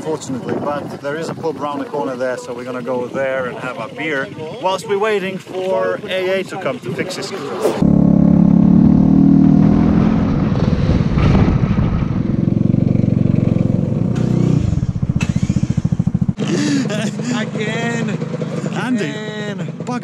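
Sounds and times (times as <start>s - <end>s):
voices: 0.0s - 7.8s, 16.4s - 20.0s
motor scooter engine: 7.8s - 10.0s, 11.8s - 20.0s
wind rush: 9.5s - 13.0s.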